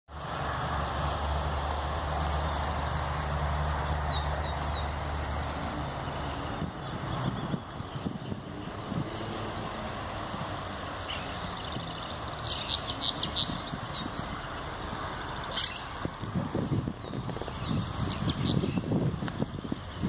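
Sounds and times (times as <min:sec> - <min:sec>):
low engine rumble: 0:00.1 - 0:20.0.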